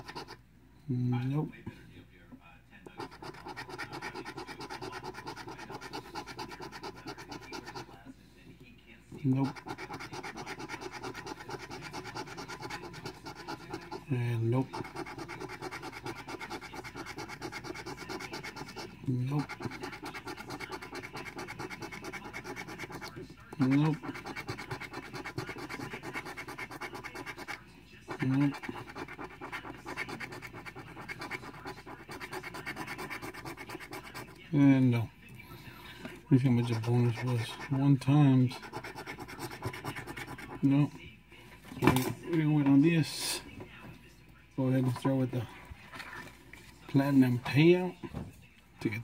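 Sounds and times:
coin scratching a ticket: 0:00.0 - 0:00.4, 0:03.0 - 0:07.9, 0:09.3 - 0:34.4, 0:36.4 - 0:40.7.

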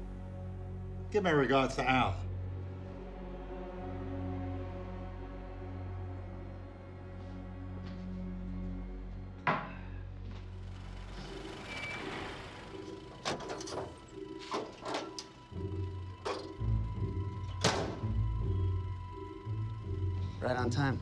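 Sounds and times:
dark drone and pulsing beat music: 0:02.2 - 0:21.0.

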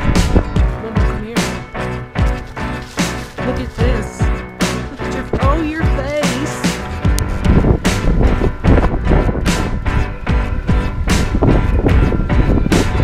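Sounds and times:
background music with beat: 0:00.0 - 0:13.0.

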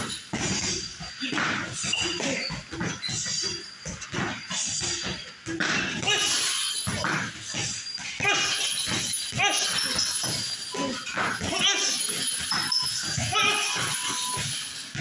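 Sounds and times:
short high-pitched cries: 0:08.2 - 0:14.8.

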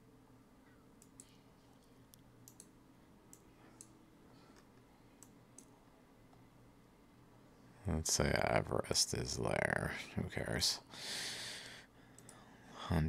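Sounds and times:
computer mouse clicks: 0:01.0 - 0:04.0, 0:04.6 - 0:06.4, 0:12.2 - 0:12.4.

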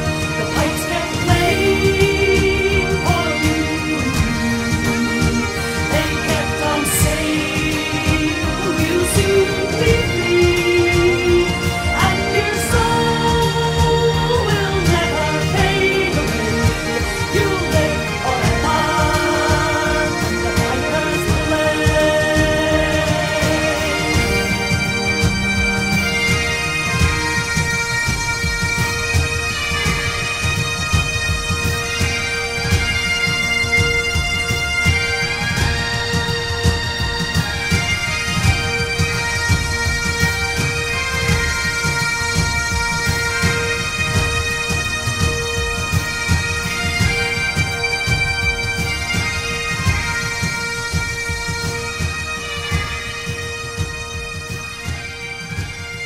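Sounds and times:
bagpipes playing: 0:00.0 - 0:56.0
band drums beating: 0:00.0 - 0:56.0.

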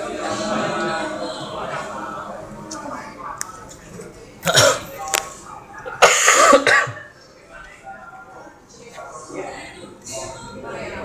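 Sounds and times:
person coughing: 0:04.4 - 0:04.9, 0:06.0 - 0:07.1.

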